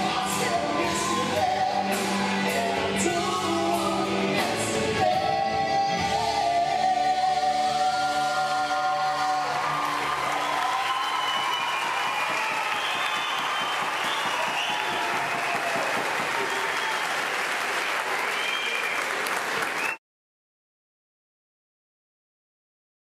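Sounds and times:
man and woman singing duet: 0.0 - 10.5
band playing: 0.0 - 12.2
audience applauding and cheering: 8.0 - 20.0.

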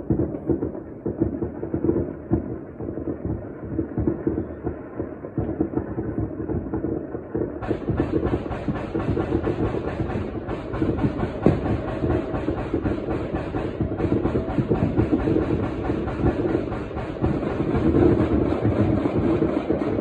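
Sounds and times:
fireworks popping and crackling: 0.0 - 20.0
heavy firework bangs: 0.0 - 20.0.

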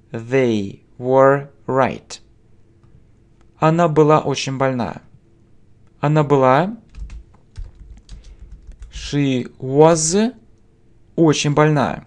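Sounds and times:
keyboard keys clicking: 6.9 - 9.0.

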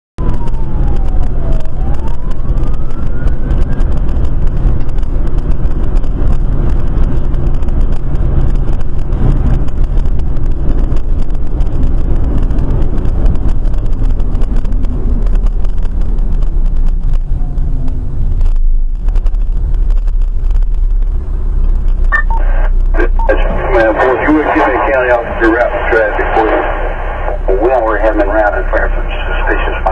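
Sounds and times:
siren: 0.2 - 6.4
vehicle rumble from inside: 0.2 - 29.9
two-way radio beeps: 22.1 - 27.4
voice over radio: 22.2 - 29.9.

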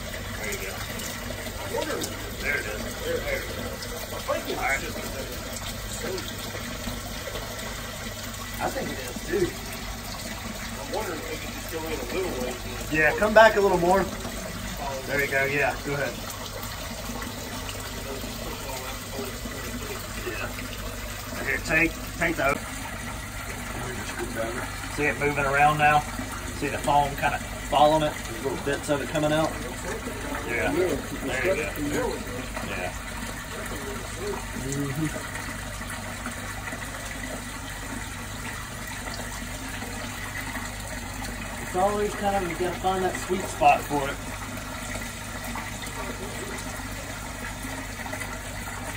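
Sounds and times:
water rushing in a manhole: 0.0 - 48.9.

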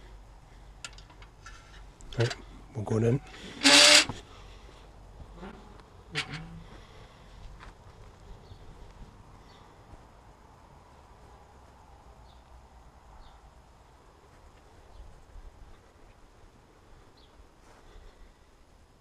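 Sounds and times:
faint outdoor background: 0.0 - 19.0
iron gate shutting: 3.2 - 4.1, 6.1 - 6.6
ringing metal clank: 6.1 - 6.6.

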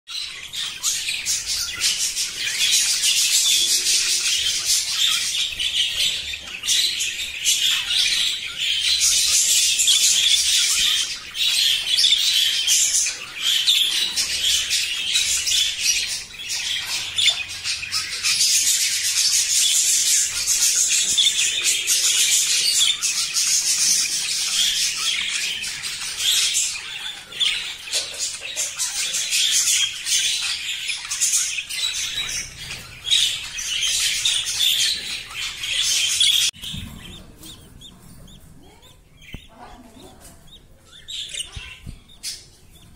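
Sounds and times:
budgerigars chattering and warbling: 0.1 - 42.9.

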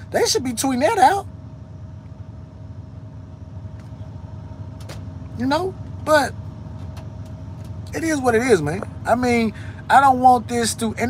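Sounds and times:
truck engine hum: 0.0 - 11.0.

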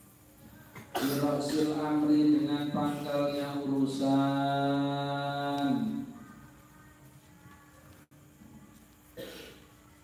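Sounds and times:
man chanting through microphone: 1.0 - 6.2.

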